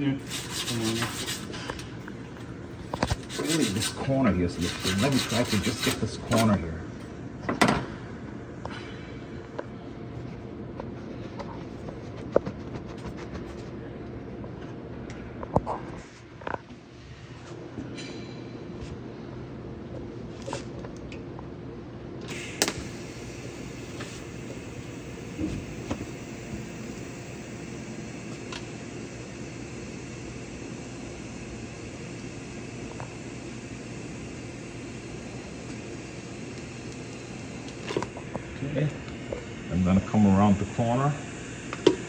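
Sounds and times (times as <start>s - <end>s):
welding arc hissing and humming: 0.0s - 6.5s, 22.2s - 42.0s.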